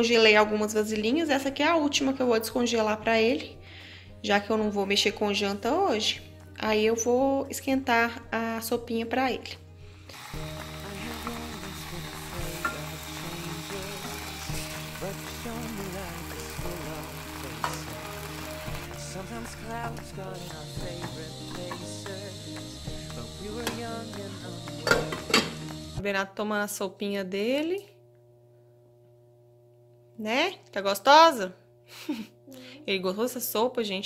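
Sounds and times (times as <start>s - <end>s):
soup sizzling in saucepan: 10.1s - 26.0s.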